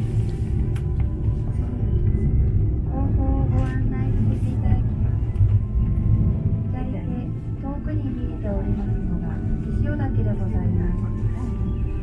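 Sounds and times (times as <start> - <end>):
cable car cabin rumbling: 0.0 - 12.0.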